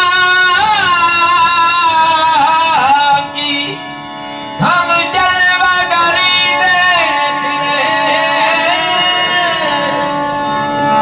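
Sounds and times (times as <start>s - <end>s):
held accompanying notes: 0.0s - 11.0s
person singing gliding lines: 4.6s - 11.0s.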